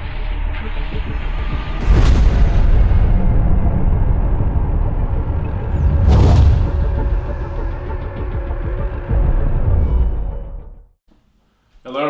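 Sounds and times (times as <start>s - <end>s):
deep cinematic rumble: 0.0s - 10.8s
falling whoosh: 5.6s - 7.7s.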